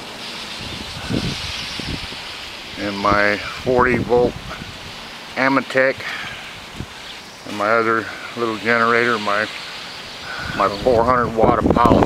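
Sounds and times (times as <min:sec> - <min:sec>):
wind on microphone: 0:00.5 - 0:05.1, 0:06.2 - 0:07.0, 0:08.6 - 0:12.0.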